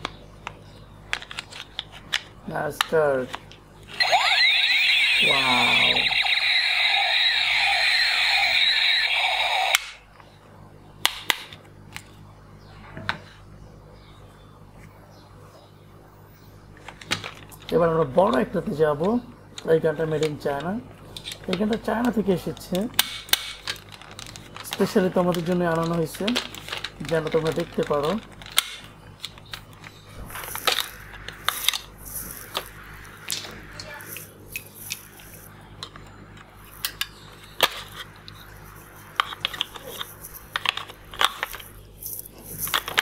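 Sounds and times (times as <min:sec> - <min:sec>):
toy blaster electronic warble: 0:03.9 - 0:10.0
plastic toy gun clicks and knocks: 0:23.0 - 0:23.8, 0:25.3 - 0:29.6.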